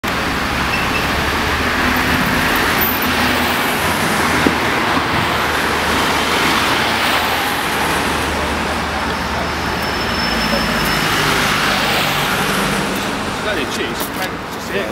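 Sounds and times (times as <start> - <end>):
road traffic rumble: 0.0 - 14.9.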